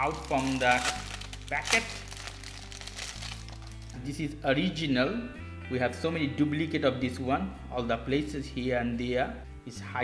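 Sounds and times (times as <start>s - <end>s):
plastic bag crinkling: 0.0s - 4.1s
background music with low notes: 0.0s - 10.0s.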